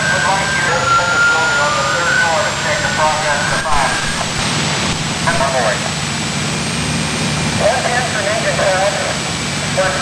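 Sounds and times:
voice over two-way radio: 0:00.0 - 0:04.4, 0:05.0 - 0:05.9, 0:07.6 - 0:10.0
low engine drone: 0:00.0 - 0:10.0.

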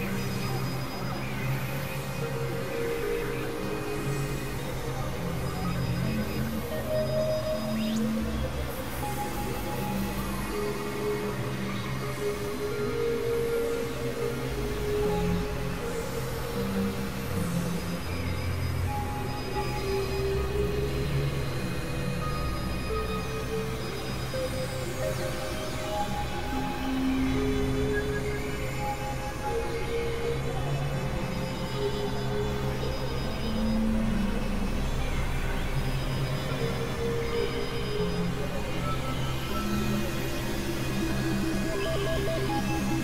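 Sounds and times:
layered synthesizer drone tones: 0:00.0 - 0:43.0.

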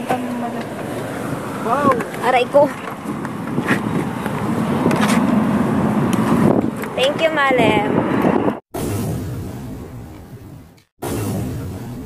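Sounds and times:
rumbling whoosh: 0:07.8 - 0:12.0.

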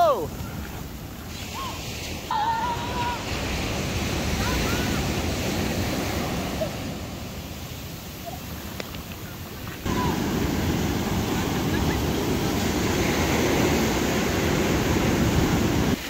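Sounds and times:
sea surf breaking on beach: 0:00.0 - 0:16.0.

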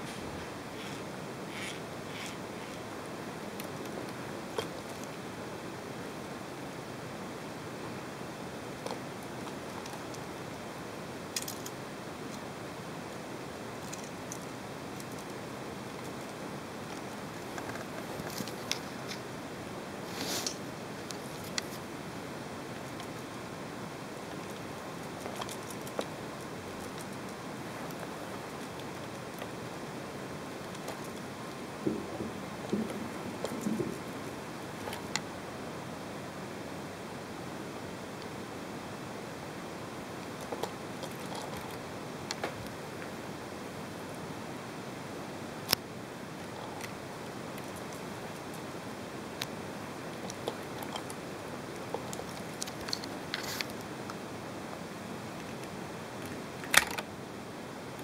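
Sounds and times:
soft rustles: 0:00.0 - 0:02.9, 0:20.0 - 0:21.9, 0:51.8 - 0:53.9
steady hiss: 0:00.0 - 0:58.0.

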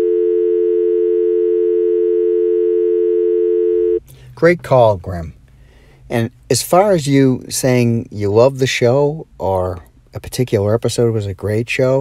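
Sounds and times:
telephone dial tone: 0:00.0 - 0:04.0.

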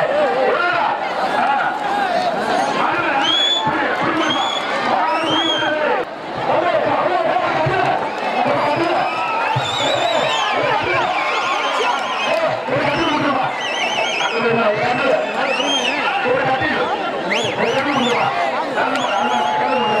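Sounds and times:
crowd shouting and cheering: 0:00.0 - 0:20.0
trilling whistles: 0:02.6 - 0:05.7, 0:09.0 - 0:12.4, 0:13.0 - 0:14.5, 0:15.2 - 0:16.0.

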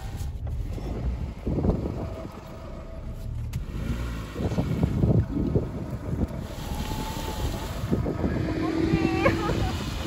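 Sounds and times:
wind buffeting microphone: 0:00.6 - 0:02.7, 0:04.2 - 0:10.0.

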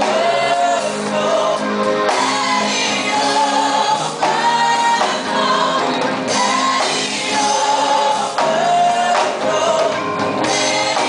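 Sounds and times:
drum kit: 0:00.0 - 0:11.0
group of voices singing: 0:00.0 - 0:11.0
keyboard: 0:00.0 - 0:11.0.

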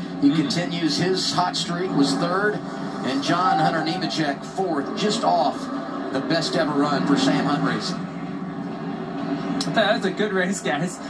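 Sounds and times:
man speaking: 0:00.0 - 0:08.0
television broadcast hum: 0:00.0 - 0:11.0.

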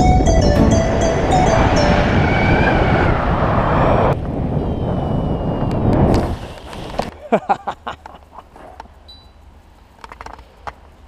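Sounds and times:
background music: 0:00.0 - 0:02.7
wind buffeting microphone: 0:00.0 - 0:07.1.

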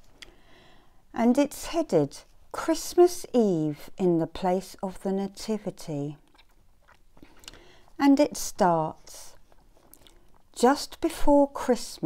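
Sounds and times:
person speaking: 0:01.2 - 0:06.2, 0:08.0 - 0:09.4, 0:10.6 - 0:12.0.

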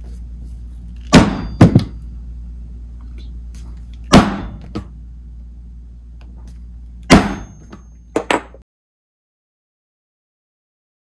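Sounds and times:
low steady hum: 0:00.0 - 0:08.6
mallet striking hole punch: 0:01.1 - 0:02.0, 0:04.1 - 0:04.9, 0:07.0 - 0:08.6.

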